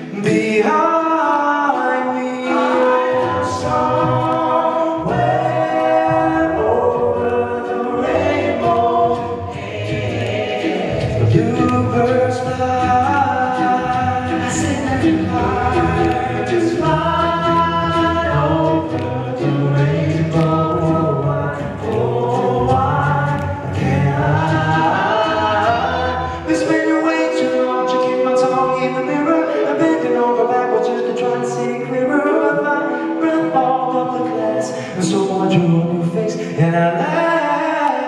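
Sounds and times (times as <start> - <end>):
male group singing in harmony: 0.0 - 38.0.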